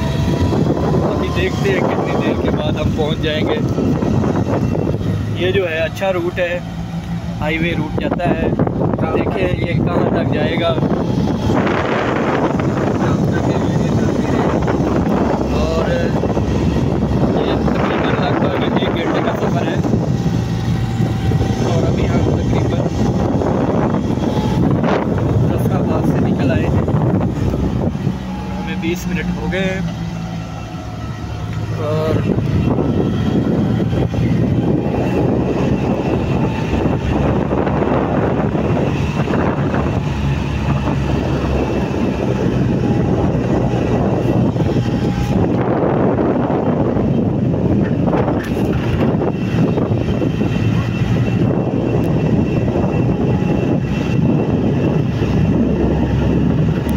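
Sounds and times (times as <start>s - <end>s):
car engine running: 0.0s - 56.9s
road and wind noise: 0.0s - 56.9s.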